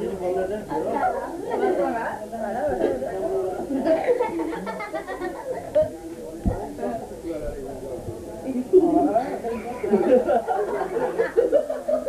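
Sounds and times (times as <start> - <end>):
overlapping chatter of voices: 0.0 - 12.0.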